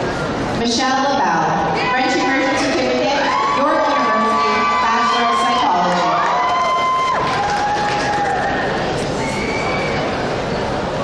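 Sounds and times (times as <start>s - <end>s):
audience cheering: 3.2s - 10.1s
long drawn-out whoops: 3.2s - 10.1s.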